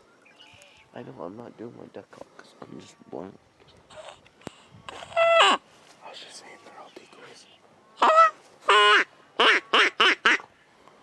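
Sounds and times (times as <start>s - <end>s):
duck call quacking: 8.0s - 10.5s.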